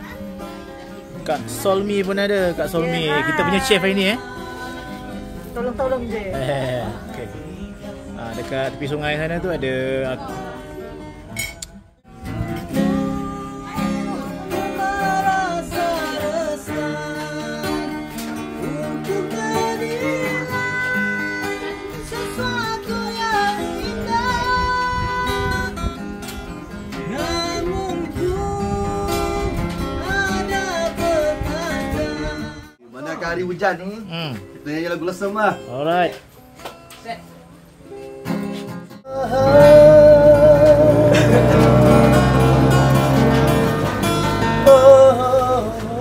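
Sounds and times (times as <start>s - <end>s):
acoustic guitars strumming: 0.0s - 32.8s, 36.2s - 46.0s.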